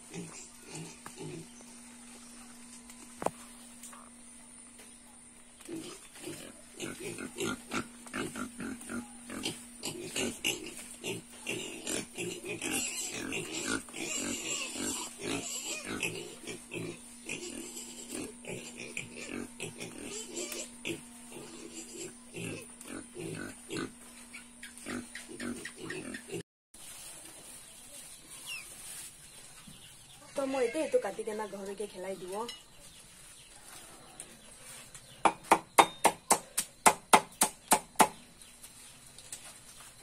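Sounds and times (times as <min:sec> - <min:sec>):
pigs grunting: 0:00.0 - 0:01.5, 0:05.6 - 0:26.4.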